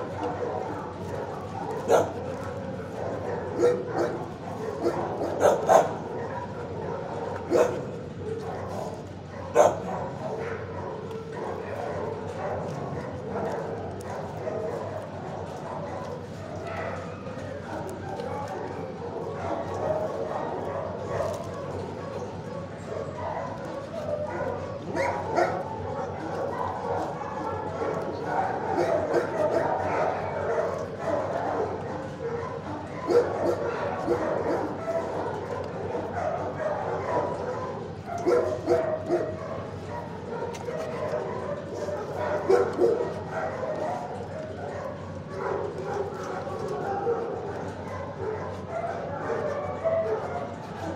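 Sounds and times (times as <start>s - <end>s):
many dogs barking: 0.0s - 50.9s.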